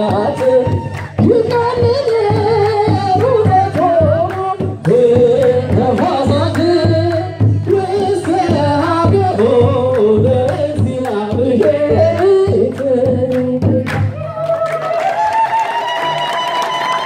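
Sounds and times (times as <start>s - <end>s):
hand claps: 0.0s - 7.3s, 8.2s - 17.0s
hand drum beats: 0.0s - 14.3s.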